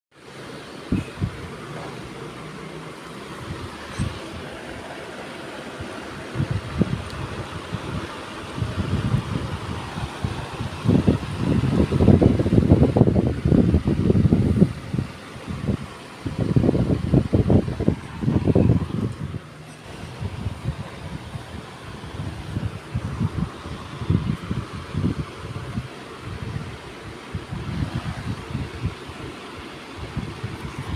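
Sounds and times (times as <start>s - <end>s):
wind buffeting microphone: 0.8s - 30.9s.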